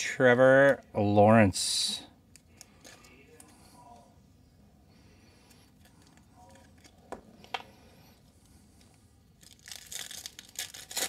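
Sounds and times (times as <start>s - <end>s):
foil wrapper tearing and crinkling: 9.4s - 11.0s.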